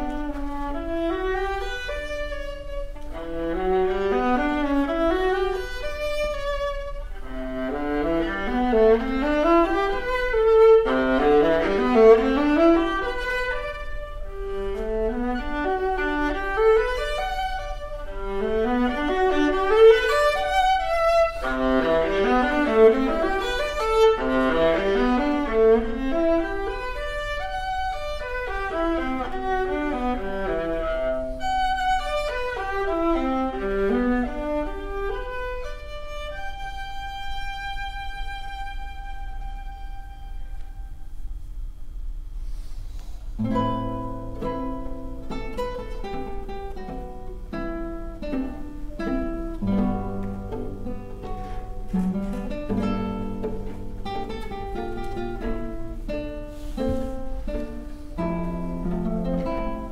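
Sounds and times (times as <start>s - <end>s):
classical guitar: 0.0s - 59.9s
viola: 0.0s - 59.9s.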